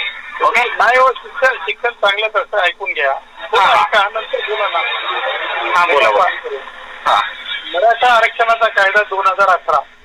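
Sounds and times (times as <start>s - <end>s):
man talking on telephone: 0.0s - 9.9s.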